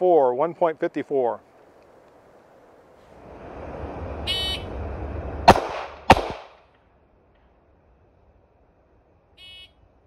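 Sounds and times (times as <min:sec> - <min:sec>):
handgun shots: 0:05.5 - 0:06.6.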